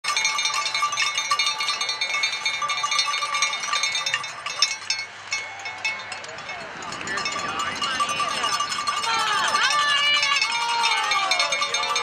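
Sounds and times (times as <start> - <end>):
cowbells clanging: 0.0 - 12.0.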